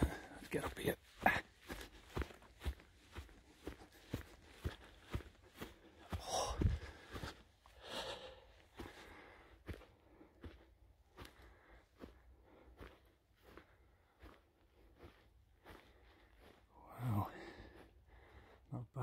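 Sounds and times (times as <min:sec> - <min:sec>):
footsteps on grassy path: 0:00.0 - 0:18.7
person breathing: 0:01.6 - 0:14.4, 0:17.2 - 0:18.7.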